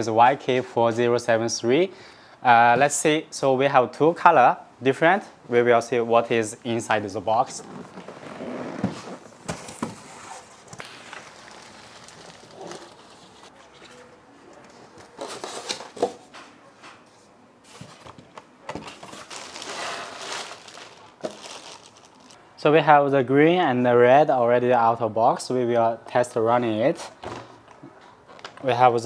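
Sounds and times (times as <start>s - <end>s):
cardboard and foam packing shifting: 7.5s - 13.6s, 18.7s - 22.4s
plastic wrapping crinkling: 7.6s - 14.0s, 18.8s - 22.4s.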